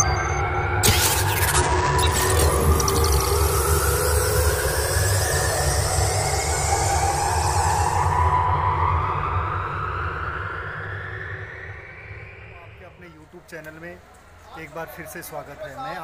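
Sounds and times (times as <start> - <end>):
deep rumble: 0.0 - 13.1
rising sweeping tones: 0.0 - 14.4.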